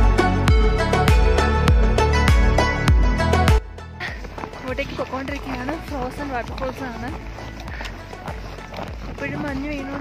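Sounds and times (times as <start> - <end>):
background music: 0.0 - 10.0
footsteps in snow: 4.0 - 10.0.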